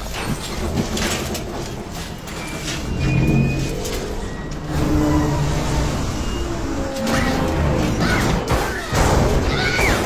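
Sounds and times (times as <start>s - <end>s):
film music score: 0.0s - 10.0s.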